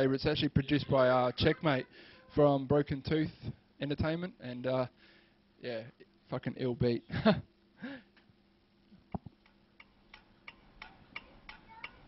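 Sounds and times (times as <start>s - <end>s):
faint ticks: 9.1s - 12.0s.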